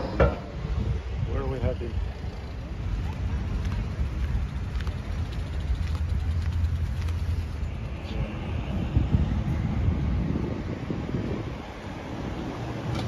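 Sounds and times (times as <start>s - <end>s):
motor vehicles passing: 0.0s - 13.0s.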